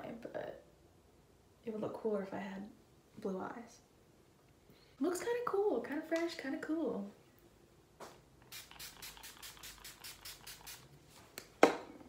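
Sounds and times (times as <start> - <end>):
spray bottle hissing puffs: 8.5 - 10.9.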